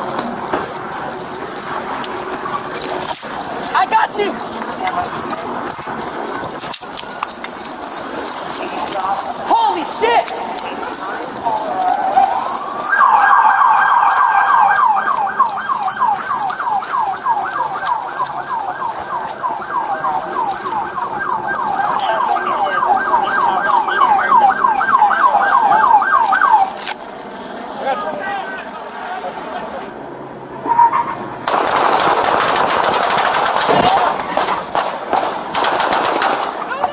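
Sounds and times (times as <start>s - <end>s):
police siren yelp: 8.4s - 27.0s.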